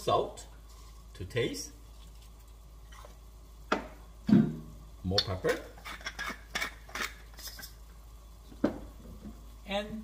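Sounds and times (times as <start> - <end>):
glass pepper shaker rattling: 5.8 - 7.8.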